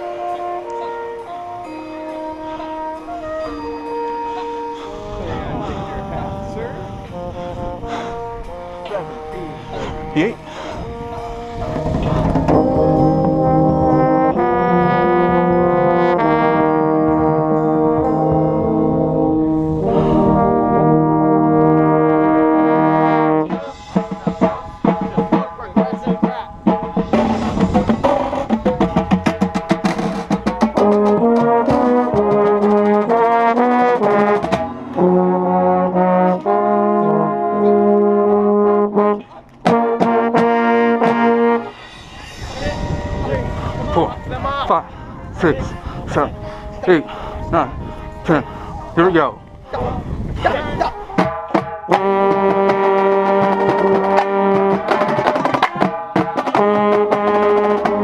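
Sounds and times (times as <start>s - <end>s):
brass chords: 0.0s - 58.0s
rapid snare drum strokes: 51.2s - 58.0s.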